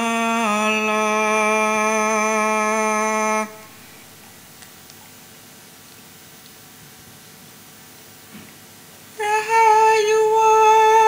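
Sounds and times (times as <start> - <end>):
singers chanting in unison: 0.0 - 4.2, 9.2 - 11.0.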